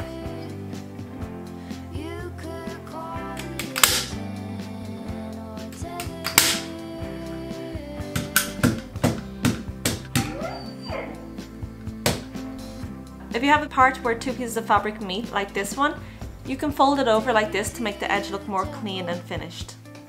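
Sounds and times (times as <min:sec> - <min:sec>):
staple gun firing: 0:03.7 - 0:04.2, 0:06.3 - 0:06.7.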